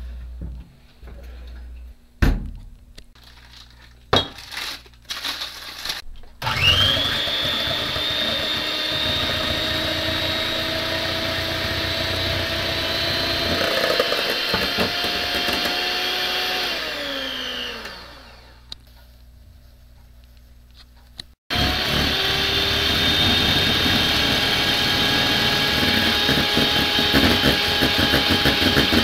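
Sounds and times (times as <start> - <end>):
electric hand mixer whining: 6.4 - 18.7, 21.5 - 29.0.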